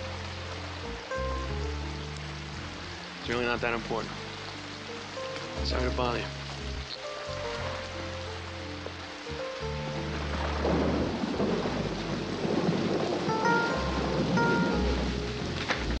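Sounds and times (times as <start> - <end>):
rain falling: 0.0 - 16.0
soft music score: 0.0 - 16.0
thunder rumbling: 9.7 - 16.0.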